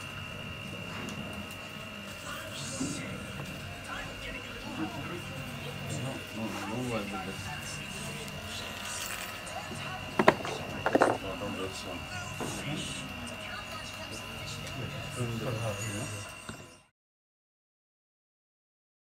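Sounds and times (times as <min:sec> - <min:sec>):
faint music: 0:00.0 - 0:16.9
high-pitched whine: 0:00.0 - 0:16.9
indistinct background voices: 0:01.3 - 0:16.8.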